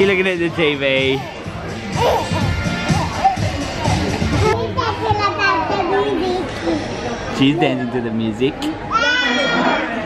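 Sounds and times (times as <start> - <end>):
restaurant chatter: 0.0 - 10.0
young child vocalising: 1.9 - 3.2.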